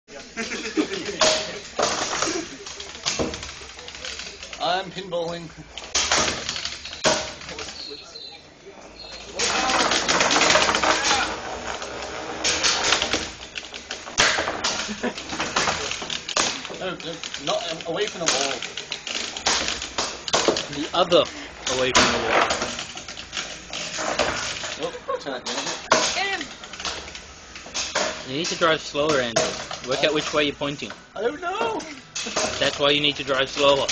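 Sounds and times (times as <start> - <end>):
combat robots clattering: 0.2 - 8.3, 8.9 - 33.9.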